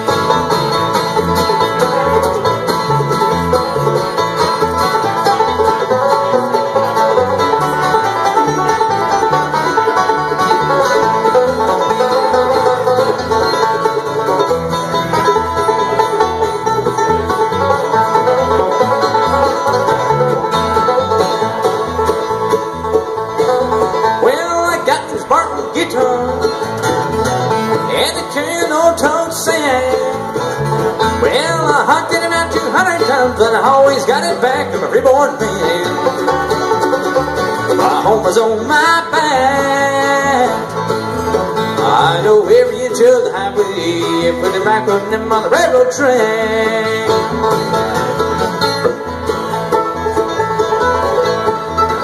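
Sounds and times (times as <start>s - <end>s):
acoustic guitar: 0.0s - 52.0s
banjo: 0.0s - 52.0s
mandolin: 0.0s - 52.0s
upright bass: 0.0s - 52.0s.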